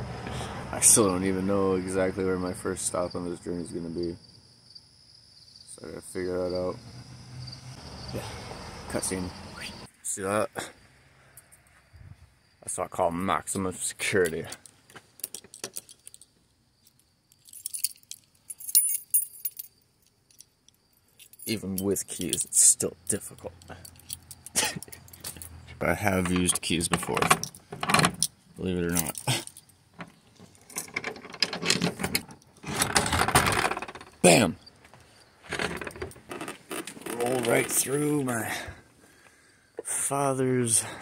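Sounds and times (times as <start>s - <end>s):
keys jangling: 14.2s - 29.8s
moped moved over gravel: 35.5s - 38.8s.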